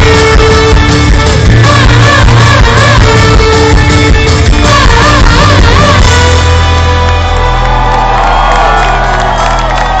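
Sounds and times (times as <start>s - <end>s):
live folk-rock band: 0.0s - 8.7s
crowd cheering and whooping: 6.4s - 10.0s.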